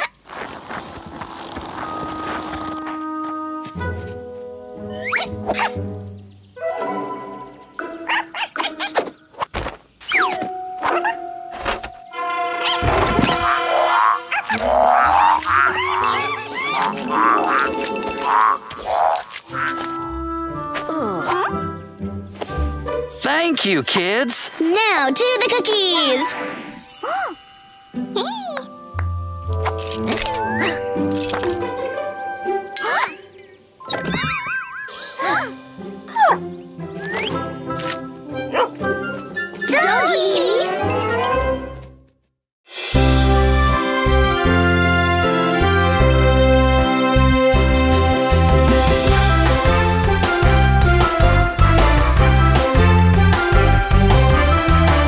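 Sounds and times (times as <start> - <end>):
cartoon background music: 2.2 - 9.4, 10.0 - 42.0, 42.7 - 55.0
cartoon puppy barking: 8.1 - 9.0, 13.8 - 16.9, 38.5 - 38.8
excited children's voices: 23.7 - 26.4, 39.7 - 40.8.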